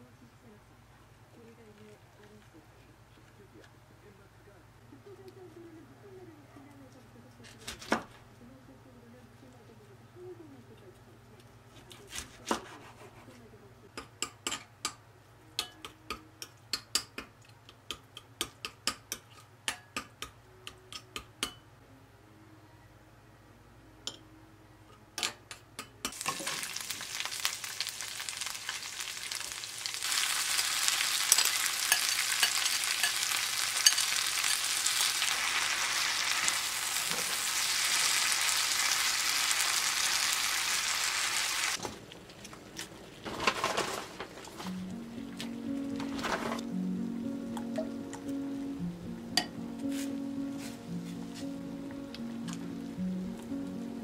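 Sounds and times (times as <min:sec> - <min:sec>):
oil sizzling in a pan: 0:26.1 - 0:41.8.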